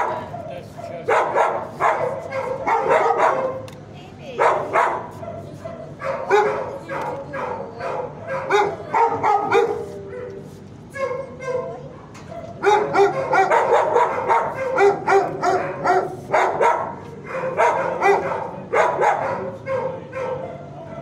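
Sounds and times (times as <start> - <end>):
dogs barking and yipping: 0.0 - 3.7, 4.3 - 21.0.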